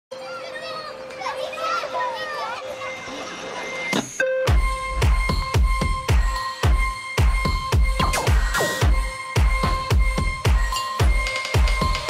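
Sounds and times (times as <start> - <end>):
children chattering: 0.1 - 3.9.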